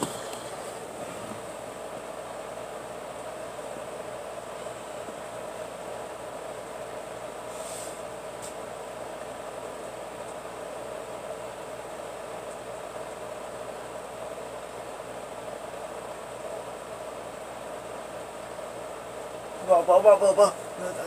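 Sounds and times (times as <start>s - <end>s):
room hiss: 0.0s - 21.0s.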